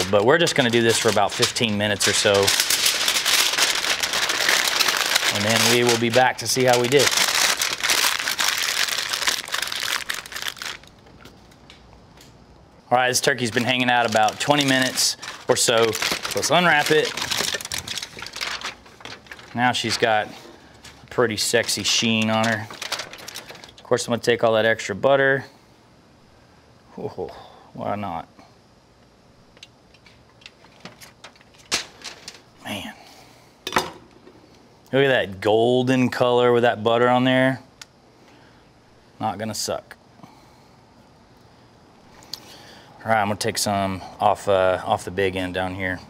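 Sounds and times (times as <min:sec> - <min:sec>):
aluminium foil crinkling: 0:00.0 - 0:11.8, 0:13.1 - 0:24.2, 0:29.9 - 0:32.6.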